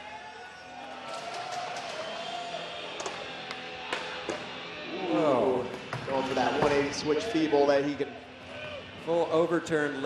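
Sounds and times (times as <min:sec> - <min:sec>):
background music: 0:00.0 - 0:10.0
crowd noise: 0:00.0 - 0:10.0.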